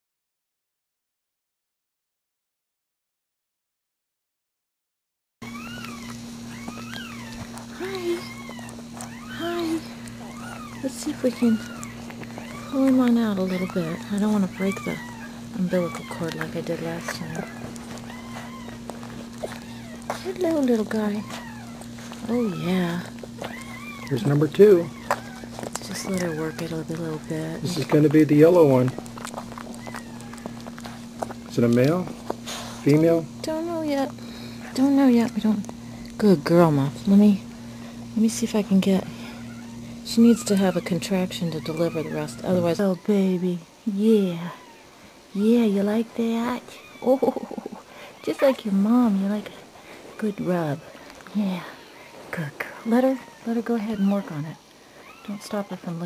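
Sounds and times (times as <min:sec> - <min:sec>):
low electrical hum: 0:05.4 - 0:56.0
puppy crying: 0:05.4 - 0:56.0.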